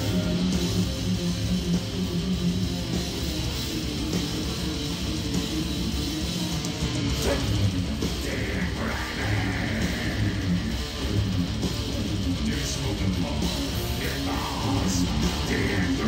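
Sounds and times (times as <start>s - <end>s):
live metal band playing: 0.0s - 16.0s.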